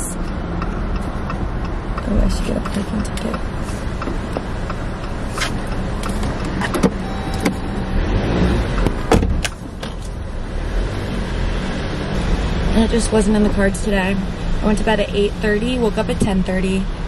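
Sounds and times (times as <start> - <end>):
car engine idling: 0.0 - 10.6
short beep: 7.0 - 8.5.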